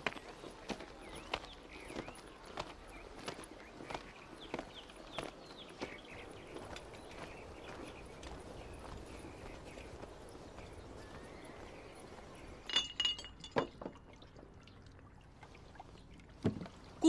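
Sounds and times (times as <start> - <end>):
footsteps on paved street: 0.0 - 12.7.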